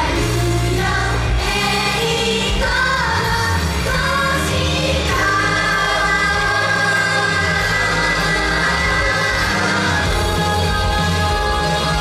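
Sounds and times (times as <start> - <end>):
group singing pop song: 0.0 - 12.0
loud backing music: 0.0 - 12.0.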